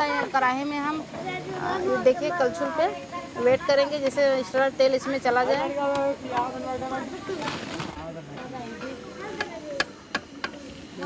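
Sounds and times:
food deep-frying in oil: 0:00.0 - 0:11.0.

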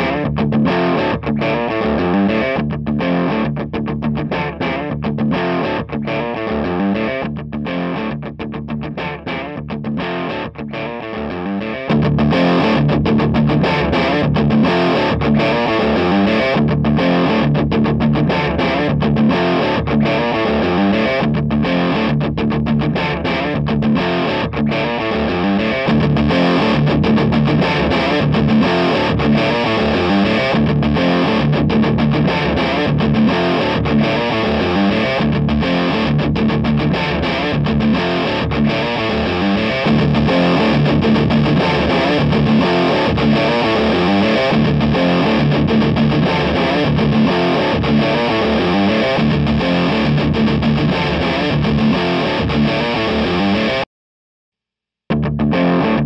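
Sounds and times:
distorted electric guitar: 0:00.0 - 0:53.9, 0:55.1 - 0:56.0.

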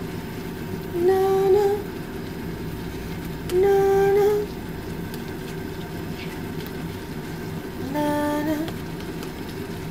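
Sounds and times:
constant low hum: 0:00.0 - 0:09.9
sauce simmering in a frying pan: 0:00.0 - 0:09.9.

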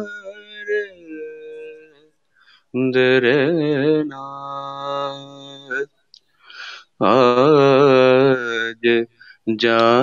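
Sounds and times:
man singing a long note: 0:00.0 - 0:02.0
short breath: 0:02.3 - 0:02.7, 0:06.3 - 0:07.0, 0:09.2 - 0:09.5.

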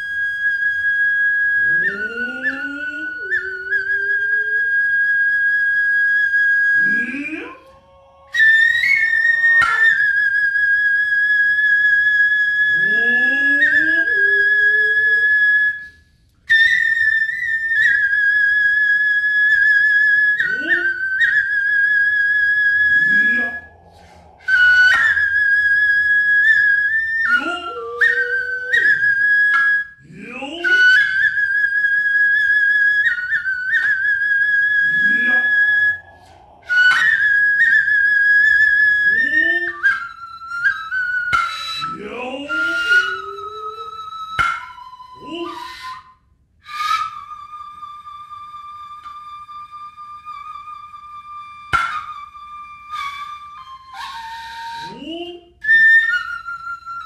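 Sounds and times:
high wavering flute notes: 0:00.0 - 0:57.0.

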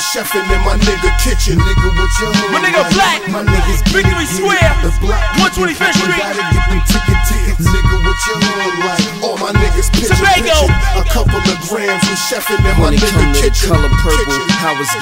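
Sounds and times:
rapping over a beat: 0:00.0 - 0:15.0
deep bass notes: 0:00.5 - 0:08.4, 0:09.6 - 0:11.6, 0:12.6 - 0:14.4.

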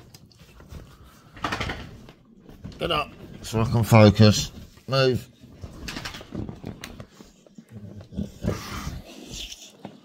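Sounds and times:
dog growling: 0:07.7 - 0:09.6.

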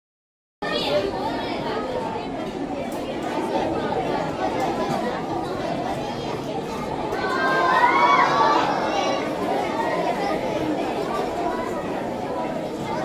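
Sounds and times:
audience chatter: 0:00.6 - 0:13.0.

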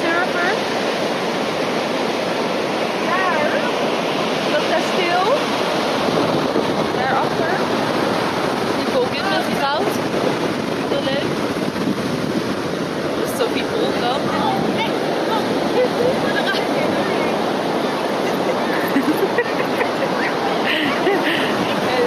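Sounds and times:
ocean surf breaking on beach: 0:00.0 - 0:22.0
wind on microphone: 0:00.0 - 0:22.0.

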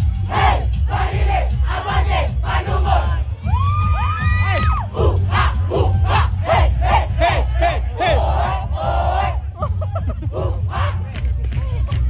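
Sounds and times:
crowd: 0:00.0 - 0:12.0
dancers shouting in rhythm: 0:00.1 - 0:09.6.

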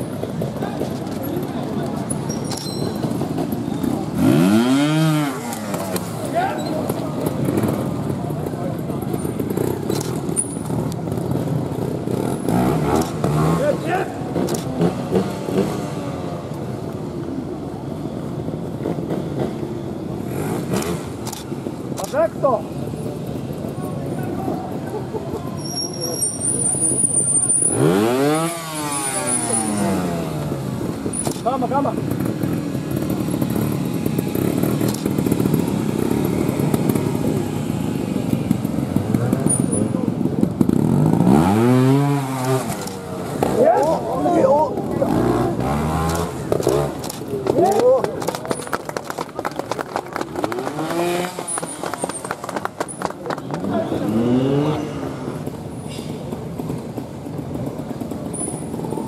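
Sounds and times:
murmur of voices: 0:00.0 - 0:15.7, 0:21.3 - 0:55.7
motorcycle engine revving: 0:00.0 - 0:48.7, 0:50.2 - 0:59.0.

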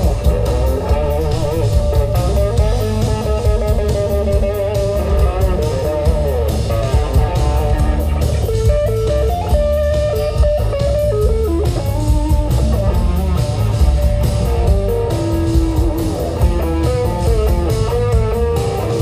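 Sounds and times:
bass guitar: 0:00.0 - 0:19.0
drum kit beat: 0:00.0 - 0:19.0
electric guitar melody: 0:00.0 - 0:19.0.

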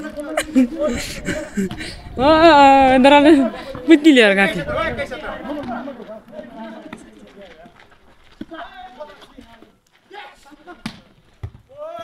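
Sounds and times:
men talking: 0:00.0 - 0:11.1.

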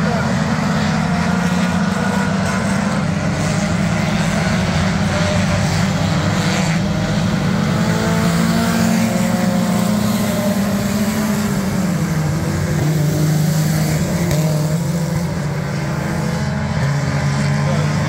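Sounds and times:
race car engines: 0:00.0 - 0:18.0.

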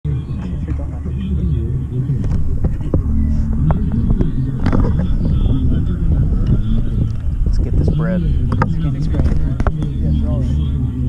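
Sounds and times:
indistinct chatter of voices: 0:00.0 - 0:11.0
steady low rumble: 0:00.1 - 0:11.0.

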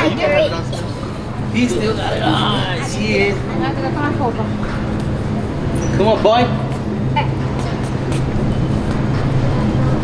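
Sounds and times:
low store background hum: 0:00.0 - 0:10.0.

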